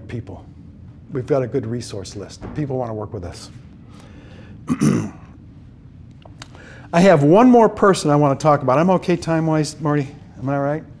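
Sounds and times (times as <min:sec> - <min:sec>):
man clearing his throat: 0:04.7 - 0:05.4.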